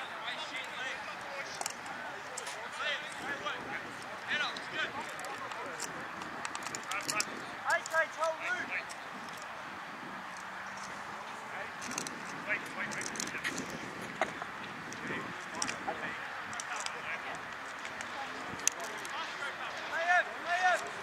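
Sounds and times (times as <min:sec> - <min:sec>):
sharp clicks: 0:04.4 - 0:09.5.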